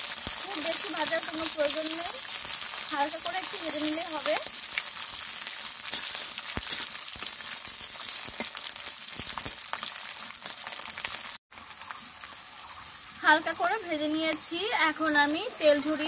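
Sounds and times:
vegetables sizzling in hot oil: 0:00.0 - 0:16.0
metal spatula scraping a pan: 0:05.8 - 0:07.2.

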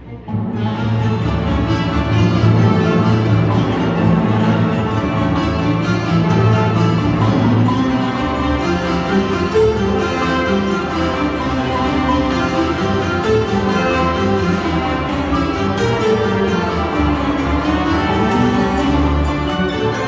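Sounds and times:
orchestra with strings: 0:00.0 - 0:20.0.

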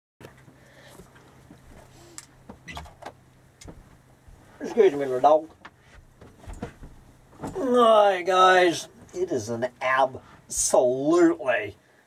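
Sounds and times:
steady low hum: 0:00.2 - 0:12.0
light knocks and clicks of handling: 0:05.5 - 0:07.6.

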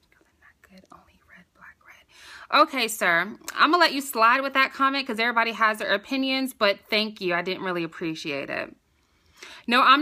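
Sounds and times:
woman whispering: 0:00.0 - 0:02.2.

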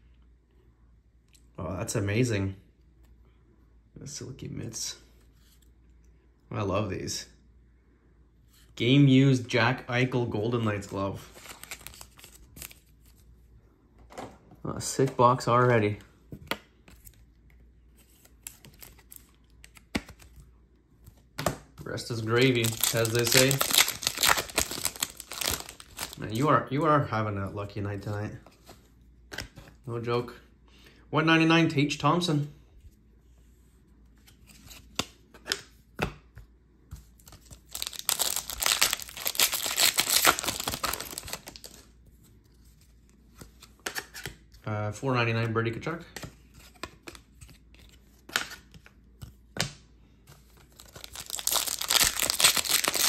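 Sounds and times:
foil wrapper tearing and crinkling: 0:11.3 - 0:12.8, 0:22.4 - 0:26.4, 0:37.6 - 0:41.8, 0:50.7 - 0:53.0
faint clicks of card handling: 0:15.8 - 0:21.3
trading cards clicking and rustling: 0:18.2 - 0:20.5, 0:21.1 - 0:26.3, 0:37.1 - 0:41.8, 0:50.6 - 0:53.0.

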